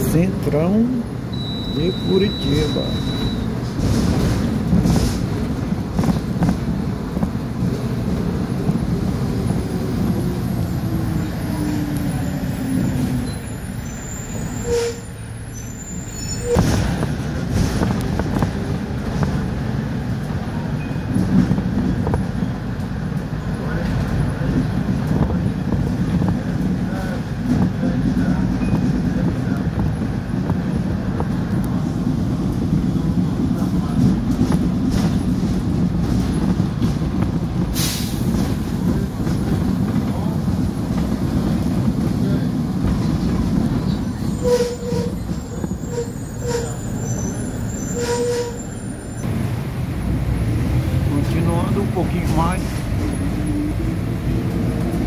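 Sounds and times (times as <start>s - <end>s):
bus engine and road noise: 0.0s - 55.0s.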